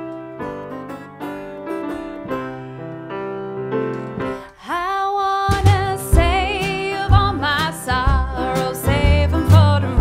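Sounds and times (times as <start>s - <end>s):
piano chords: 0.0s - 10.0s
plucked folk strings: 5.5s - 10.0s.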